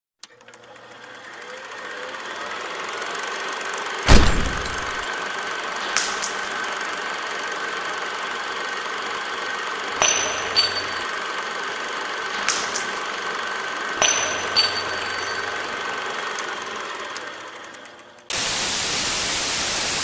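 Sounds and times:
metal casing clinking on floor: 0:04.1 - 0:05.1, 0:05.8 - 0:06.8, 0:10.0 - 0:11.2, 0:12.3 - 0:13.4, 0:14.0 - 0:16.0
hiss: 0:18.3 - 0:20.0.

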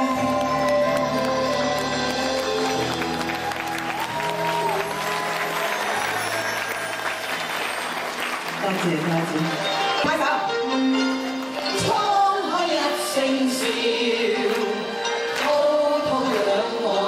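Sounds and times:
live band and singer: 0:00.0 - 0:05.0, 0:08.6 - 0:17.0
audience applause: 0:00.0 - 0:10.0.

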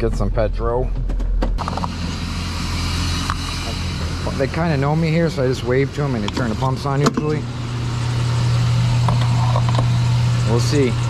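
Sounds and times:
motor vehicle hum and hiss: 0:01.6 - 0:11.0.

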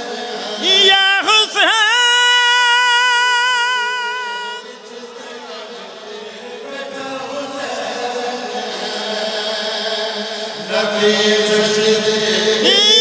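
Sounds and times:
men chanting through loudspeakers: 0:00.0 - 0:13.0.

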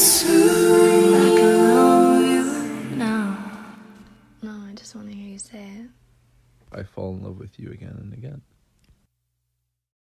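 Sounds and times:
soft sung vocals: 0:00.0 - 0:04.4.

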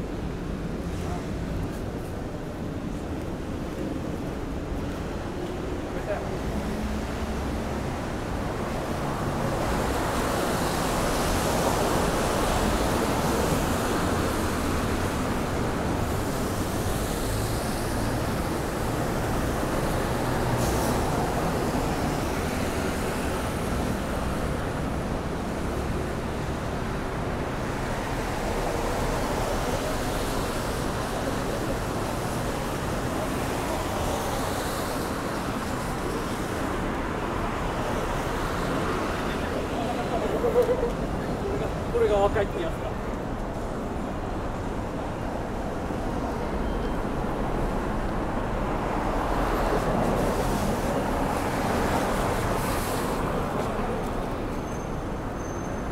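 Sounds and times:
cars passing on wet street: 0:00.0 - 0:55.9.

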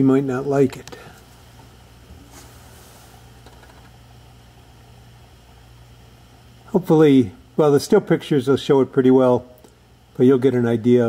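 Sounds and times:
low electrical hum: 0:00.0 - 0:11.0
faint handling rustle: 0:00.9 - 0:03.8.

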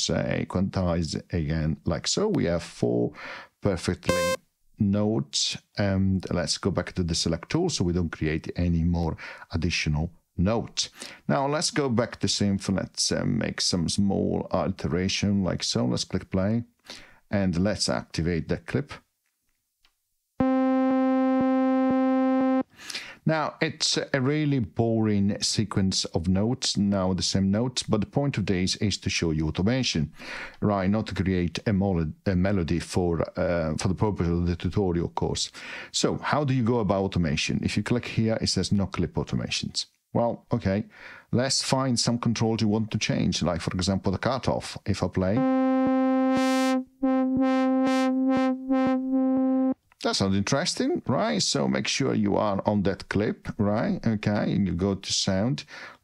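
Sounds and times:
synthesizer repeating one note: 0:04.1 - 0:04.4, 0:20.4 - 0:22.6, 0:45.4 - 0:49.8.

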